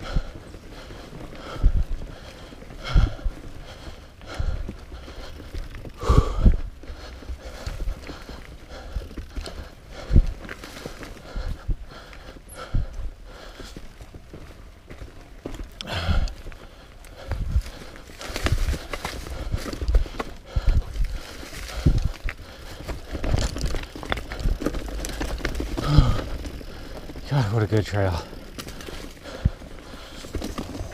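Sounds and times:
bike tyres rolling over leaves: 0.0s - 12.7s, 13.3s - 30.9s.

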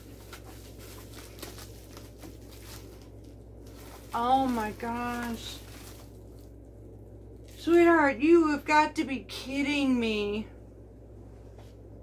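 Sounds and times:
paper and packaging rustling: 0.0s - 6.6s
steady low hum: 0.0s - 12.0s.

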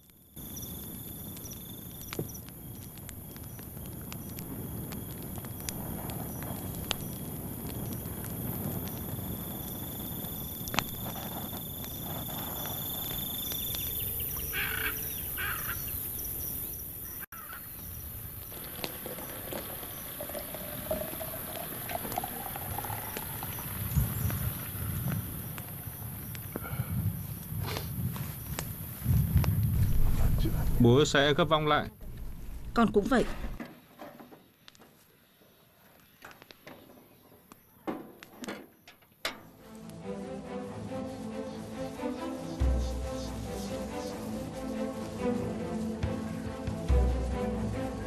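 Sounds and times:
insects and frogs chorus: 0.0s - 29.5s
high insect trill: 0.0s - 31.8s, 39.7s - 48.0s
campfire crackles: 0.0s - 33.6s, 37.5s - 48.0s.

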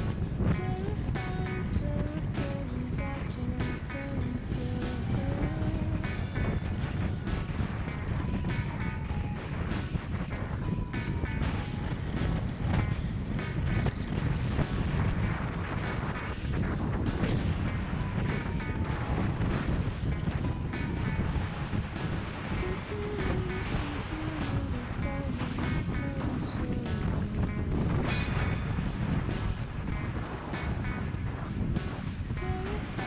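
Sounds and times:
background music with steady beat: 0.0s - 33.0s
wind rumble on microphone: 0.0s - 33.0s.

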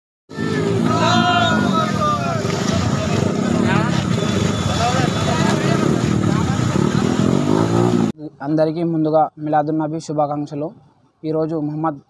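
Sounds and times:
men shouting: 0.3s - 4.0s
motorcycle engines running: 0.3s - 8.1s.

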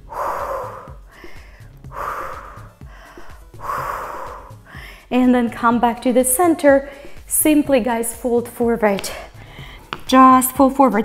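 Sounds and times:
woman breathing deeply: 0.0s - 5.1s, 6.8s - 7.3s, 9.1s - 10.0s
soft background music: 0.0s - 11.0s.

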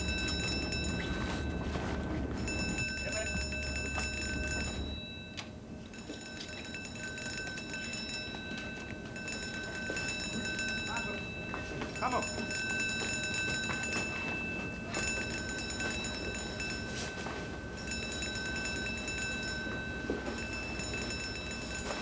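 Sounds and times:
alarm bell ringing: 0.0s - 22.0s.

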